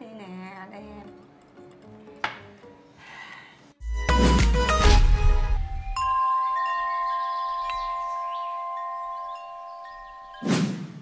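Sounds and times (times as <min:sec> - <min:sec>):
chimes ringing: 0:05.5 - 0:10.5.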